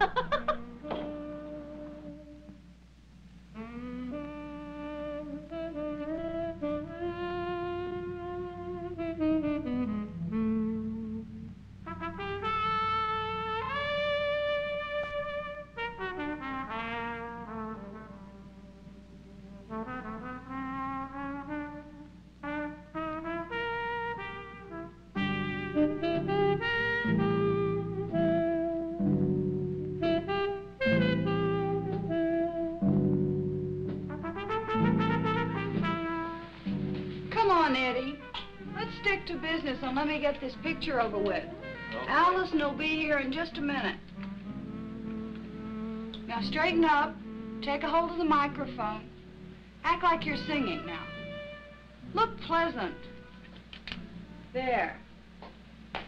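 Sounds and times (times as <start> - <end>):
slow jazzy brass melody: 0.0 - 55.9
orchestral accompaniment: 3.6 - 54.8.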